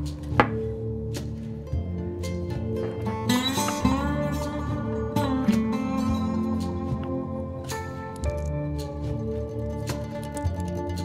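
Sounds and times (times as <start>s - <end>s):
acoustic guitar music: 0.0s - 11.0s
objects knocking on wooden board: 0.3s - 0.7s.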